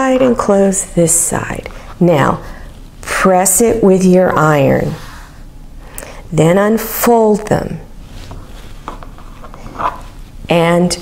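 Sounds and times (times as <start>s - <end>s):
fabric rustling: 8.0s - 10.5s.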